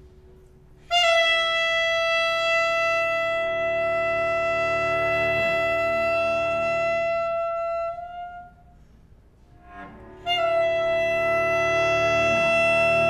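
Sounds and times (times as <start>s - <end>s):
alto saxophone high note: 0.8s - 8.8s, 10.2s - 13.0s
bowed cello: 1.8s - 13.0s.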